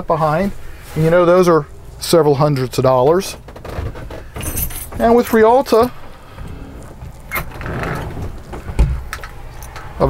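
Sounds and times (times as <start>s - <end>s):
door panel scraping: 5.9s - 9.1s.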